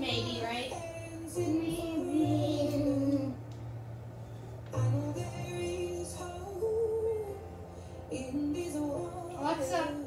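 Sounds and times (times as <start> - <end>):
woman singing a song: 0.0 - 3.4, 8.2 - 10.0.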